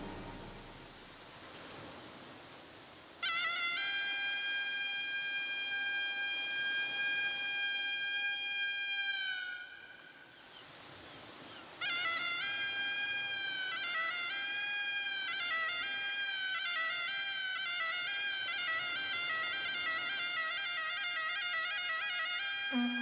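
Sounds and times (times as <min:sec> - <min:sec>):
reedy wind instrument high note: 0:00.0 - 0:01.1, 0:03.2 - 0:10.4, 0:11.8 - 0:23.0.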